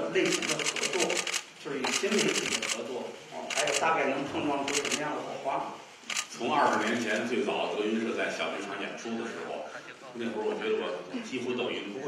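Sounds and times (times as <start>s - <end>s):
person speaking: 0.0s - 8.0s
camera shutters clicking: 0.2s - 2.9s, 3.5s - 3.9s, 4.6s - 5.0s, 6.0s - 7.3s.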